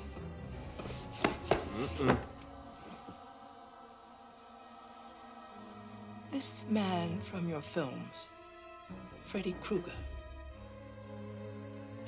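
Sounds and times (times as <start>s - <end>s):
quiet film score: 0.0s - 12.0s.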